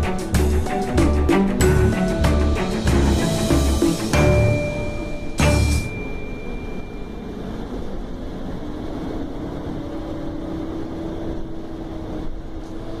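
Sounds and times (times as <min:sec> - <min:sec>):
bus engine and road rumble: 0:00.0 - 0:13.0.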